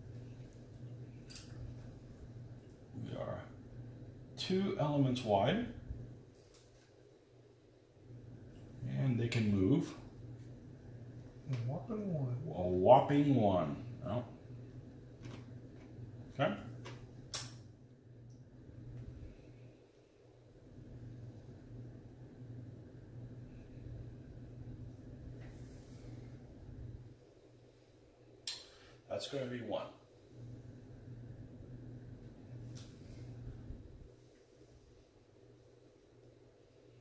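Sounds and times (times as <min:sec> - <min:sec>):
faint low hum: 0:00.0 - 0:37.0.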